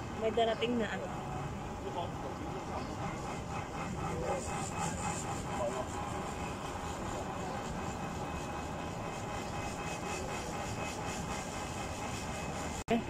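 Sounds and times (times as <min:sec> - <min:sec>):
tram rolling on track: 0:00.0 - 0:12.8.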